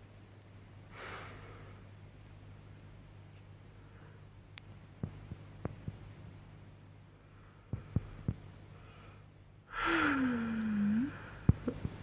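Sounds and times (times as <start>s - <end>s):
woman humming: 9.7s - 11.8s.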